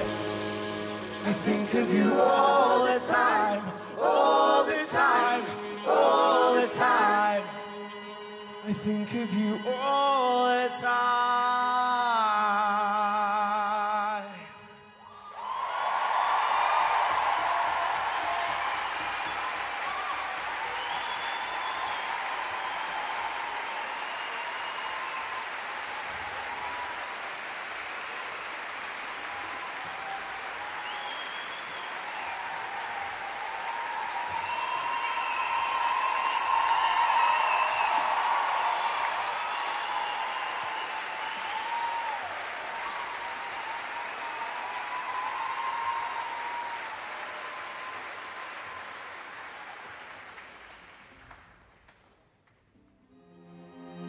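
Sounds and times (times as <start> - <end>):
audience applauding and cheering: 15.0 - 52.8.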